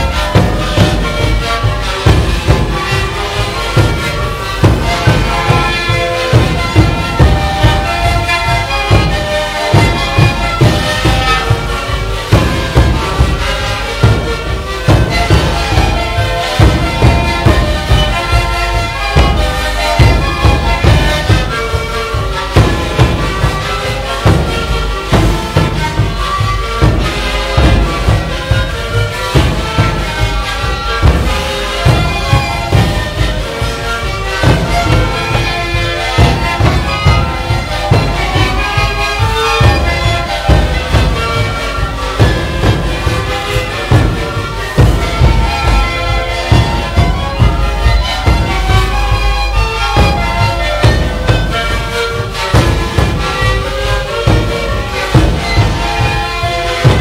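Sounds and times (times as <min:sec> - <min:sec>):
bass drums beating: 0:00.0 - 0:57.0
panpipes playing held notes: 0:00.0 - 0:57.0.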